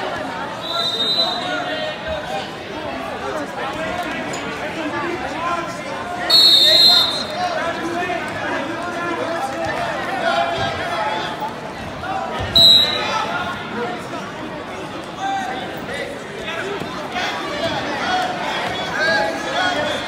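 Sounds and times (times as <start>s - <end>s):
crowd shouting and chatter: 0.0s - 20.0s
referee's whistle: 0.6s - 1.6s, 6.3s - 7.4s, 12.5s - 13.2s.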